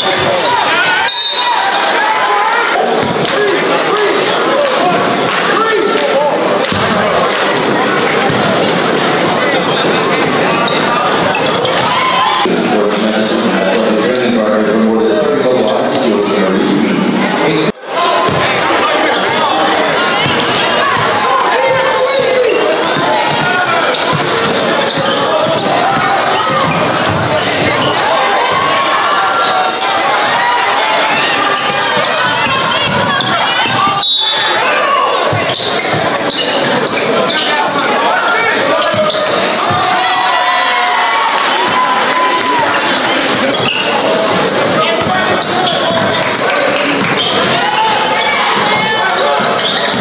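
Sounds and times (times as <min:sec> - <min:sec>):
crowd chatter echoing: 0:00.0 - 0:50.0.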